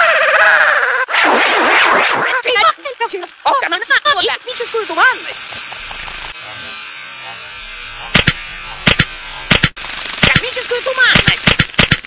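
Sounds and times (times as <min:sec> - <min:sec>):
electric buzzing hiss: 0:01.4 - 0:12.0.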